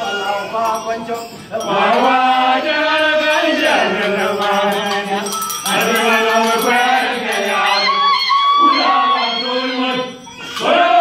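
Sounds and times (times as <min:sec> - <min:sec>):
group of voices chanting: 0:01.6 - 0:11.0.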